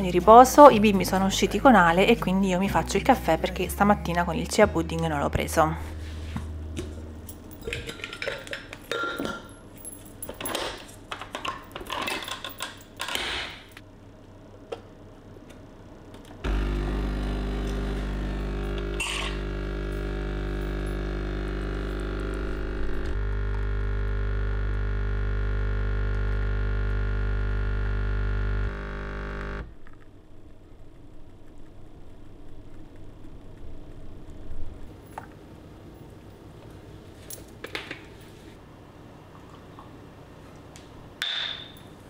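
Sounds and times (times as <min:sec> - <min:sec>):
espresso pump buzzing hum: 0:16.3 - 0:36.9.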